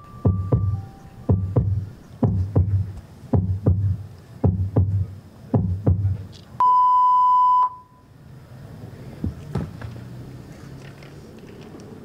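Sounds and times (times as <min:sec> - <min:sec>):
loud electronic beep: 0:00.0 - 0:01.8.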